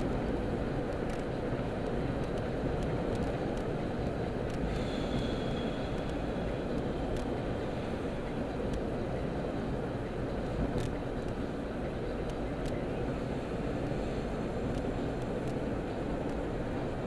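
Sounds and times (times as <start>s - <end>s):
car road and engine noise: 0.0s - 17.0s
faint high whine: 0.0s - 17.0s.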